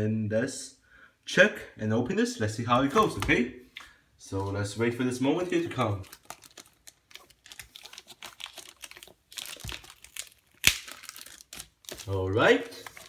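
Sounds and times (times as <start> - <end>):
shrink wrap crinkling: 4.2 - 13.0.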